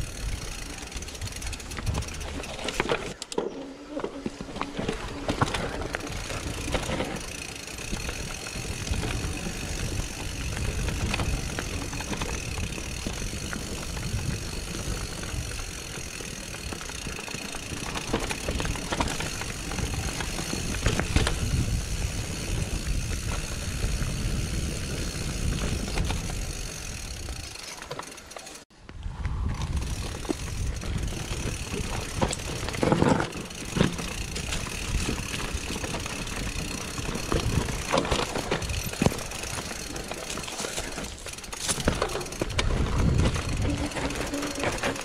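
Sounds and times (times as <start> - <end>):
bike rattling and knocking: 0.0 - 28.6, 29.6 - 45.0
bike tyres crunching over stones: 0.0 - 28.6, 29.3 - 45.0.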